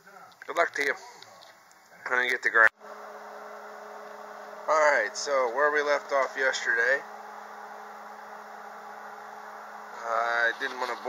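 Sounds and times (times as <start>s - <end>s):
background hum: 0.0s - 11.0s
even hiss: 2.9s - 11.0s.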